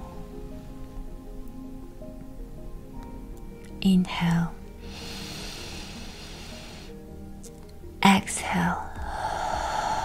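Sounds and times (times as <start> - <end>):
soft sustained music tone: 0.0 - 10.0
breathy spoken cue: 8.4 - 10.0.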